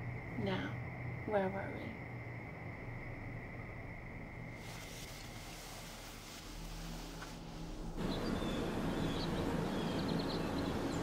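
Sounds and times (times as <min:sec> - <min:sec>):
low background rumble: 0:06.6 - 0:11.0
small birds chirping: 0:08.0 - 0:11.0.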